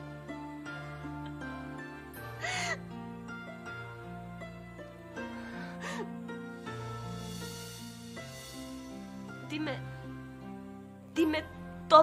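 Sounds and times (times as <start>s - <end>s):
sad music with held notes: 0.0s - 12.0s
woman sobbing: 2.4s - 2.8s.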